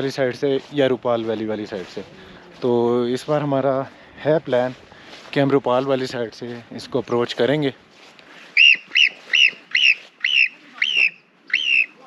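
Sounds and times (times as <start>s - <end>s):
marmot alarm chirps: 8.6s - 12.0s.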